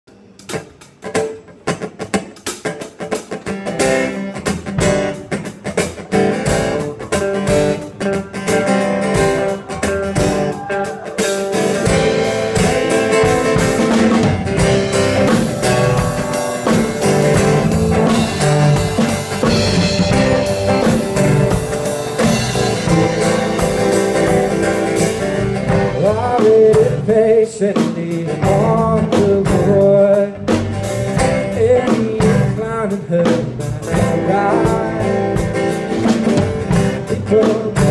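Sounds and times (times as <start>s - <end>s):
live band music: 0.2s - 37.9s.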